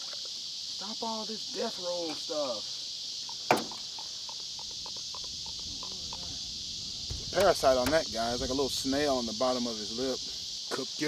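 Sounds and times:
high-pitched insect chorus: 0:00.0 - 0:11.0
sharp knock: 0:03.5 - 0:03.8.

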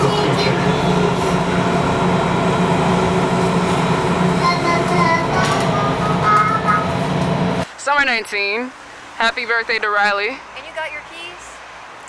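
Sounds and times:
subway train rumbling: 0:00.0 - 0:07.7.

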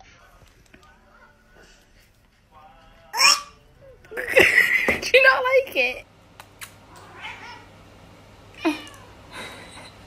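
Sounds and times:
cat meowing: 0:06.9 - 0:07.7, 0:08.6 - 0:09.2.

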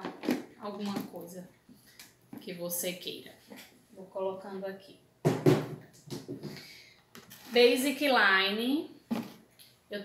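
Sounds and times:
plastic containers knocking: 0:00.0 - 0:01.2, 0:05.2 - 0:06.6.

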